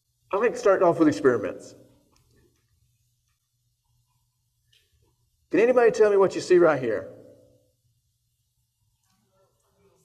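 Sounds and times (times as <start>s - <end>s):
faint low hum: 0.0s - 10.0s
man speaking: 0.3s - 1.8s, 5.5s - 7.2s.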